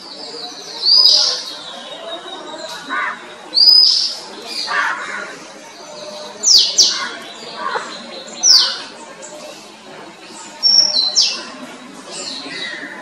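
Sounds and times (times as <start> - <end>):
bird singing whistled notes: 3.6 - 4.2, 10.6 - 11.5.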